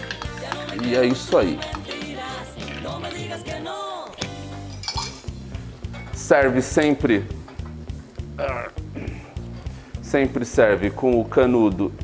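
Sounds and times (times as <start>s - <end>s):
background music: 0.0s - 12.0s
bar spoon clinking against ice and glass: 4.6s - 5.4s.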